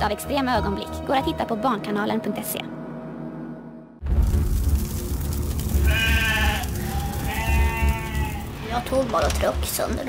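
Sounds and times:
low rumble of fire: 0:04.0 - 0:10.0
sheep bleating: 0:05.8 - 0:08.7.

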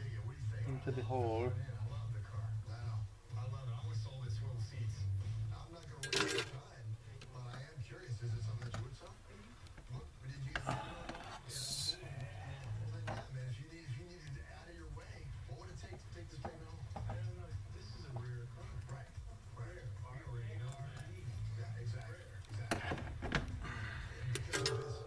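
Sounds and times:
background music: 0:00.0 - 0:25.0
faint background voices: 0:00.0 - 0:25.0.

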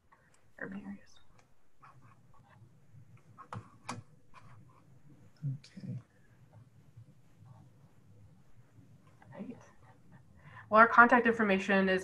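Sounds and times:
low steady hum: 0:00.0 - 0:12.0
quiet murmured speech: 0:05.4 - 0:06.0.

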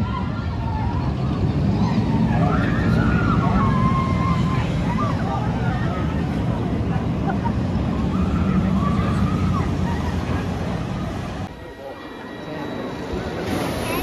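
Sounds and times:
roller coaster rumble: 0:00.0 - 0:14.0.

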